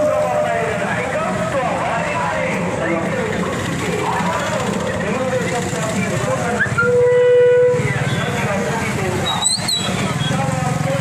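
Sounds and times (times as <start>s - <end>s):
crowd chatter: 0.0s - 11.0s
horn blast: 6.8s - 8.0s.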